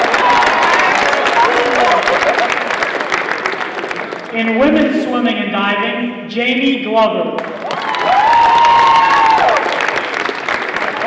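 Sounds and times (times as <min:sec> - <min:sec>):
audience applauding: 0:00.0 - 0:04.4, 0:07.4 - 0:11.0.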